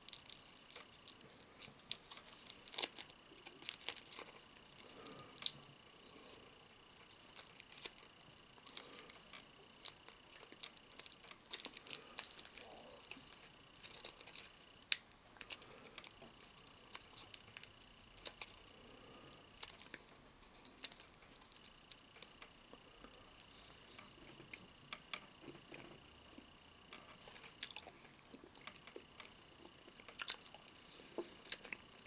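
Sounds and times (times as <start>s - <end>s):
crispy fried food tearing: 0.0s - 5.9s, 6.8s - 18.6s, 19.6s - 22.6s, 29.9s - 30.8s.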